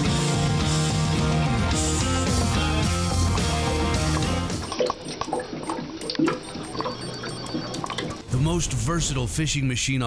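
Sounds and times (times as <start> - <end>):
background music: 0.0 - 4.8
water glugs and drips: 3.9 - 8.5.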